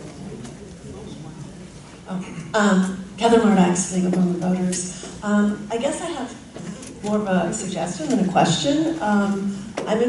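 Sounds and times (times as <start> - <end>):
faint indistinct voices: 0.0 - 5.0
room noise: 0.0 - 10.0.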